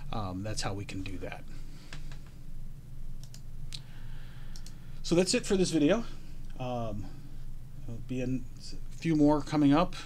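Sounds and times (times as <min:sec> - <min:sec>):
low steady hum: 0:00.0 - 0:10.0
computer mouse clicks: 0:03.2 - 0:03.8, 0:04.5 - 0:04.8.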